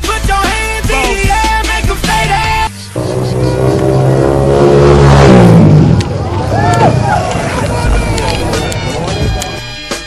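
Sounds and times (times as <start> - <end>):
motorcycle engine revving: 2.9 - 6.4.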